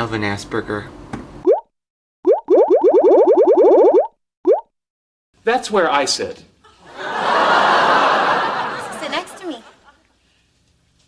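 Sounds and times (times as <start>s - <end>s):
cartoon bloop sound effect: 1.4s - 4.7s.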